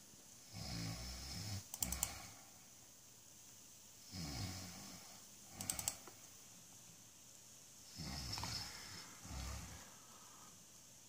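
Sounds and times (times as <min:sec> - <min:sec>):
computer mouse clicks: 0:01.7 - 0:02.2, 0:05.6 - 0:06.2.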